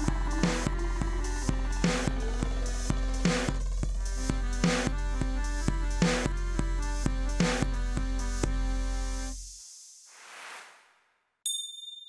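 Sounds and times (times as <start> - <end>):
high bell-like ding: 11.5 - 12.0.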